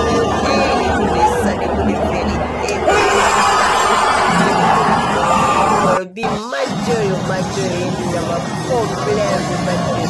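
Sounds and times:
stadium crowd cheering: 2.4s - 6.0s.

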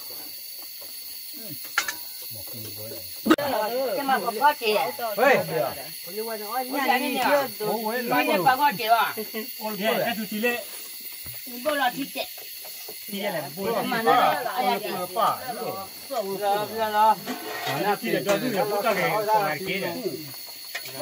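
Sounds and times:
people talking: 1.4s - 1.6s, 2.3s - 10.7s, 11.5s - 12.3s, 13.1s - 21.0s.

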